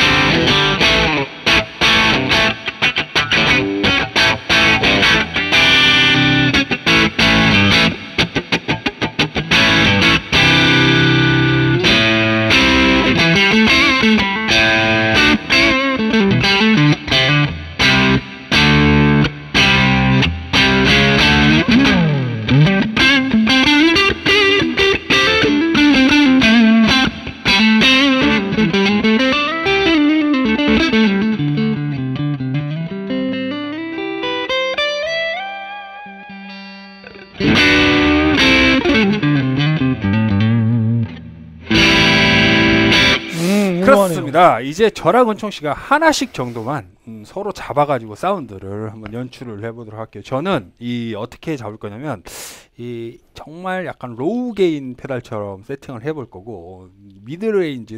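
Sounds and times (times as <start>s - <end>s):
overdriven electric guitar: 0.0s - 44.3s.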